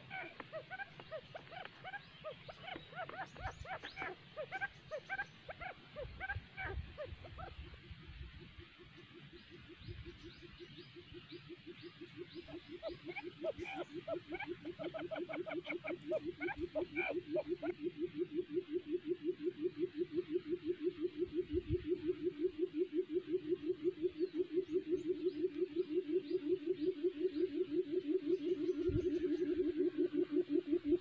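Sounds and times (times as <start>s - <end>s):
quail chirping: 0.0s - 31.0s
quail low repeated notes: 0.0s - 31.0s.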